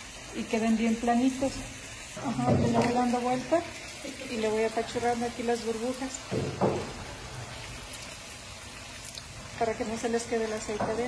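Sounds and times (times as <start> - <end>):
oil sizzling in a pan: 0.0 - 11.0.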